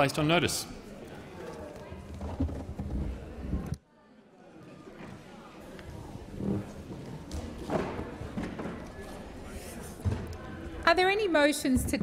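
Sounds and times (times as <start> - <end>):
murmur of voices: 0.0 - 12.0
people moving about: 0.8 - 12.0.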